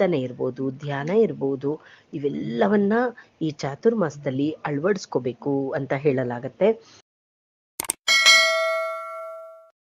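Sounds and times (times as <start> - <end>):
mouse clicks: 7.8 - 8.0
bright bell ding: 8.1 - 9.8.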